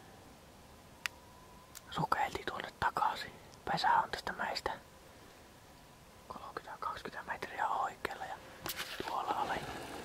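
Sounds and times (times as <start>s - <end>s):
person whispering: 1.9s - 4.8s, 6.3s - 8.4s, 9.0s - 9.8s.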